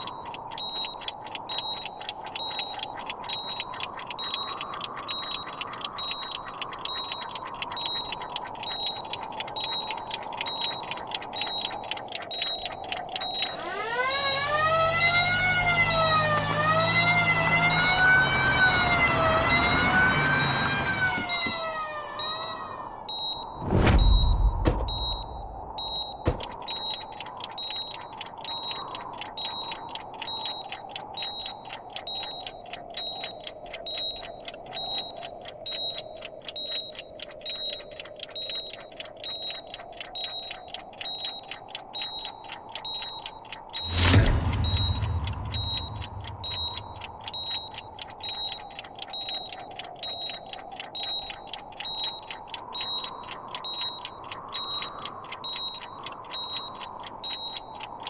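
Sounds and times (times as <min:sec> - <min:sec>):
clock-like ticking: 0:00.0 - 0:58.0
loud hit with deep boom: 0:43.9 - 0:47.3.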